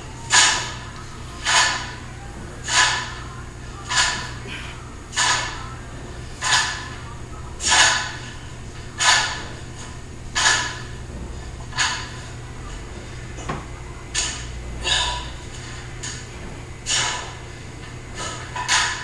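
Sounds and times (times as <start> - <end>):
steady low hum: 0.0 - 19.0
sharp forceful breaths: 14.2 - 16.2.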